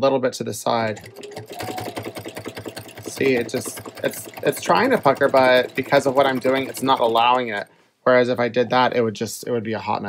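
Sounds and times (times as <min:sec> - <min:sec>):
sewing machine motor whine: 0:00.8 - 0:07.7.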